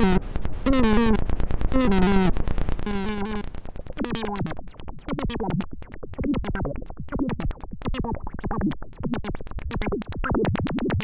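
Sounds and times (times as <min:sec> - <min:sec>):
synthesizer notes sliding down: 0:00.0 - 0:11.0.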